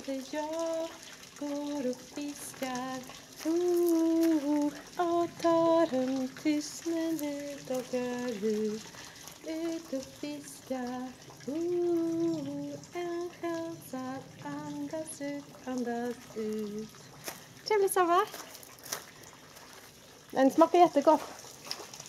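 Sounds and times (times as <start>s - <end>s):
woman singing unaccompanied: 0.0s - 17.1s.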